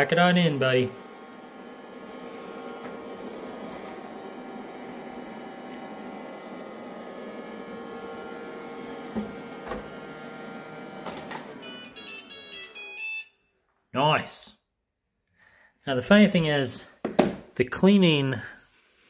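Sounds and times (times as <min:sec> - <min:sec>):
robot vacuum motor hum: 0:00.0 - 0:13.2.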